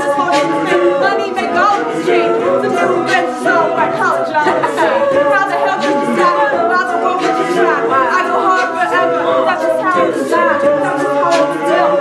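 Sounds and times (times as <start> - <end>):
beatboxing: 0.0 - 12.0
choir of backing voices: 0.0 - 12.0.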